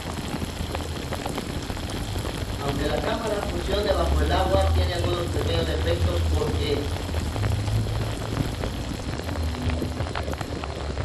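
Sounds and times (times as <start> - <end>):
drops pattering on camera: 0.0 - 11.0
shower water hissing: 0.0 - 11.0
low rumble: 0.1 - 11.0.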